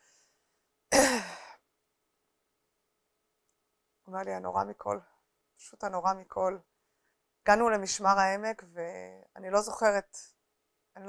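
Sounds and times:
woman sighing: 1.0 - 1.6.

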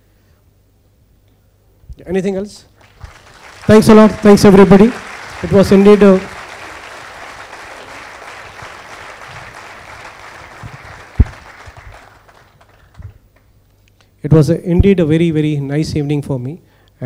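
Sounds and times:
audience applauding: 2.7 - 13.5.

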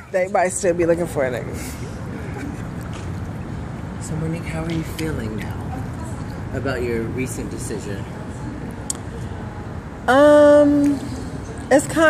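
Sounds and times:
pool water sloshing: 0.0 - 7.4.

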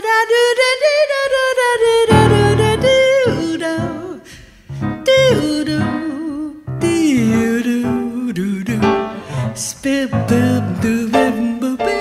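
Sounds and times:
grand piano chords: 2.0 - 12.0.

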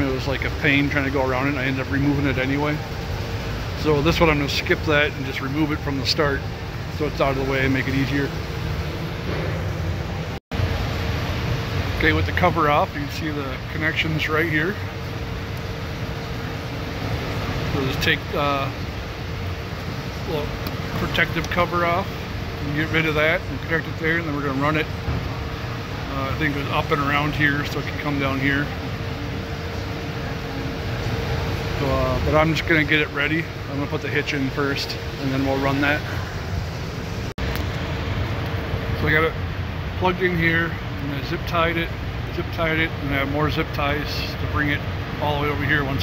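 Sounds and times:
man speaking: 0.0 - 2.9, 3.8 - 8.4, 12.0 - 14.9, 17.6 - 18.8, 20.2 - 24.9, 26.0 - 28.8, 31.8 - 36.3, 38.9 - 39.4, 40.0 - 46.0
background machinery hum and hiss: 0.0 - 46.0.

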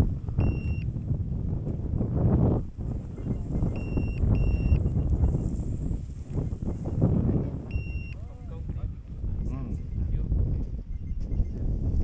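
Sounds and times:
wind buffeting microphone: 0.0 - 12.0
short electronic beeps: 0.4 - 0.9, 3.1 - 5.6, 7.7 - 8.3, 10.8 - 11.6.

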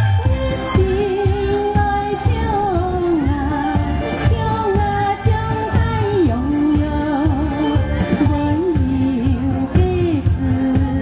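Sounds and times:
music with steady beat: 0.0 - 11.0
woman singing slow melody: 0.0 - 11.0.

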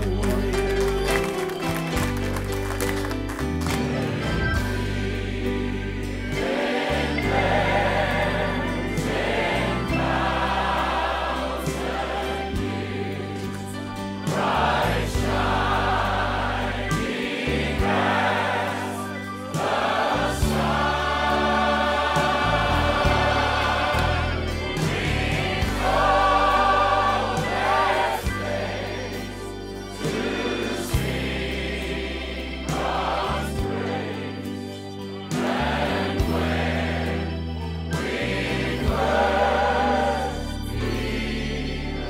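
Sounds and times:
low musical accompaniment: 0.0 - 42.0
group singing a gospel hymn: 3.8 - 42.0.

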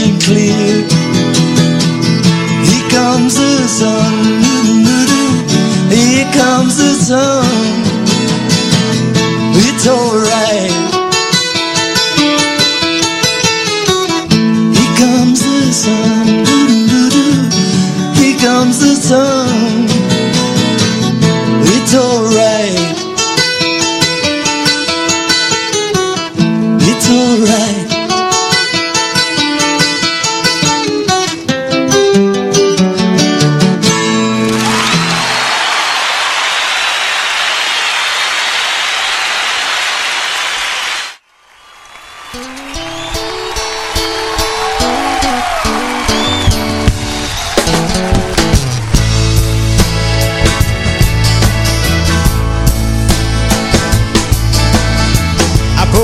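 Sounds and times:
person singing: 0.0 - 1.1, 2.4 - 8.3, 9.4 - 11.2, 14.7 - 20.3, 55.4 - 56.0
bluegrass band playing: 0.0 - 15.2, 42.4 - 56.0
acoustic guitar strumming: 0.0 - 35.6, 42.3 - 56.0
faint high whistle: 46.1 - 46.7.

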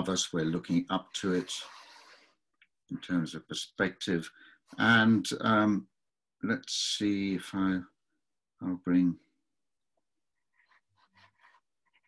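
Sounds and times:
pencil scratching on paper: 1.2 - 2.3, 10.4 - 12.0.

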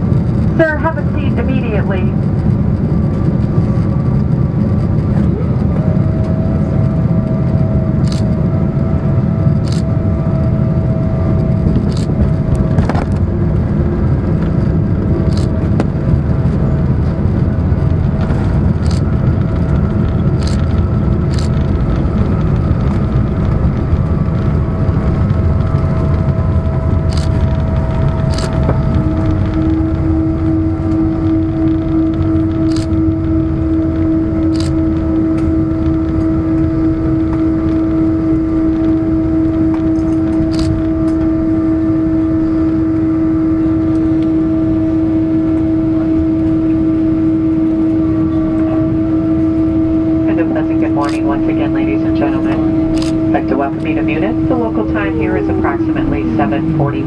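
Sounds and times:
falling engine whine: 0.0 - 57.0
steady humming tone: 0.0 - 57.0
wheels and engines rumbling: 0.0 - 57.0.

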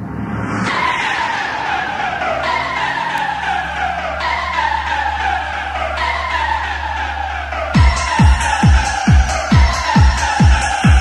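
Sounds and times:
falling synth tone: 0.0 - 11.0
low bass drone: 0.0 - 11.0.

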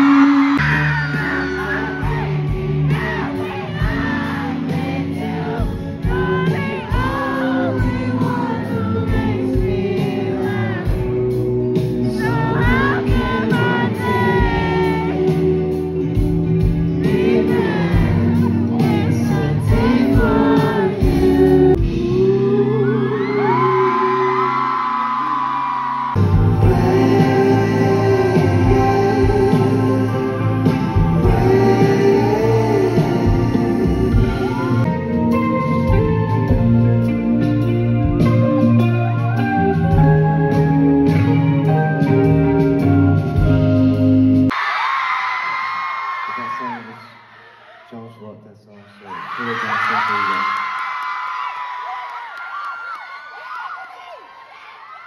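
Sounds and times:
fans whooping: 0.0 - 4.1, 22.6 - 26.7, 48.9 - 55.0
live rock band playing: 0.0 - 23.0, 26.1 - 44.6.

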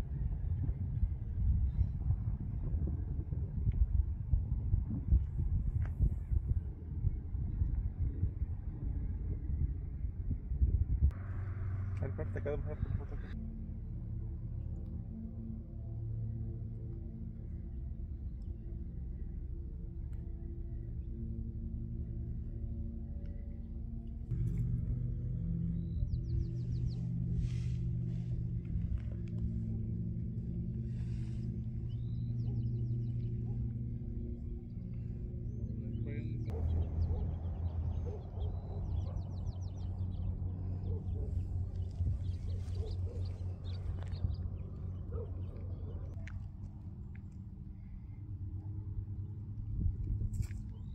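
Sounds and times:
ambient low drone music: 0.0 - 50.9
bird chirps and trills: 25.5 - 28.6, 31.0 - 46.2.

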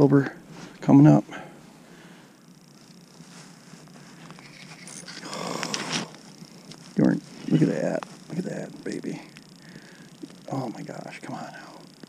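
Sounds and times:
rustling with small clicks: 2.6 - 10.5.

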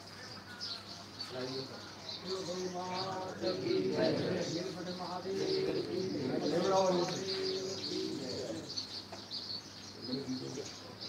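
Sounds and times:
small birds chirping: 0.0 - 11.0
faint voice: 1.8 - 8.8.

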